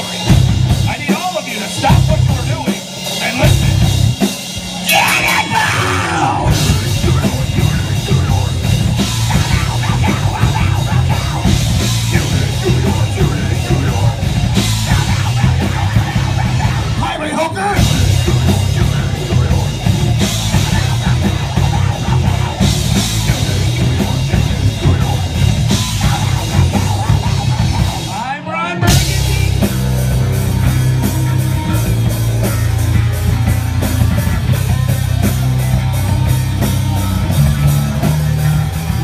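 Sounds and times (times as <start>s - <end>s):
bass guitar: 0.0s - 39.0s
distorted electric guitars: 0.0s - 39.0s
drum kit: 0.0s - 39.0s
person singing: 4.9s - 27.3s.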